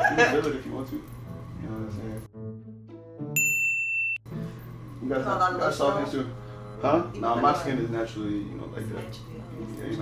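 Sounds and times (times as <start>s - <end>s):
background music: 1.1s - 3.6s.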